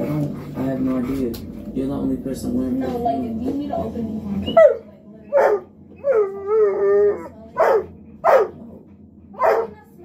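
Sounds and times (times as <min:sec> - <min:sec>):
dog howling: 0:04.5 - 0:08.6
dog barking: 0:04.6 - 0:05.7, 0:07.6 - 0:08.6, 0:09.4 - 0:09.8.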